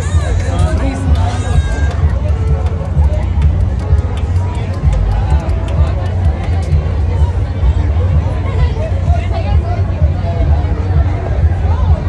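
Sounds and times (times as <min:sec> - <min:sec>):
background chatter of voices: 0:00.0 - 0:12.0
steady low rumble: 0:00.0 - 0:12.0.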